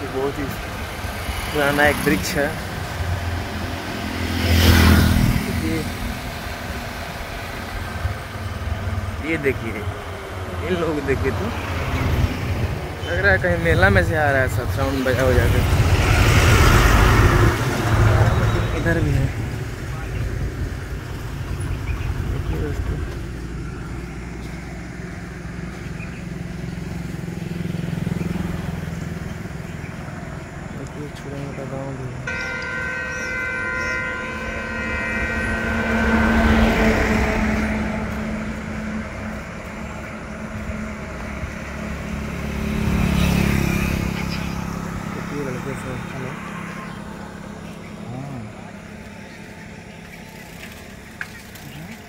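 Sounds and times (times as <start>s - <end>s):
traffic engine rumble: 0.0s - 52.0s
vehicle passing close by: 0.0s - 52.0s.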